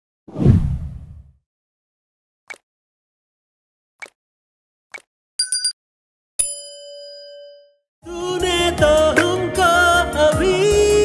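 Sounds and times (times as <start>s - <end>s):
whoosh with deep boom: 0.3s - 1.3s.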